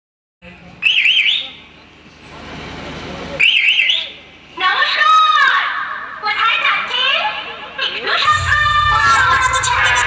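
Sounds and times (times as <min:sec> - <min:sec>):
rising swell of noise: 0:08.2 - 0:10.0
warbling siren sound effect: 0:08.2 - 0:10.0.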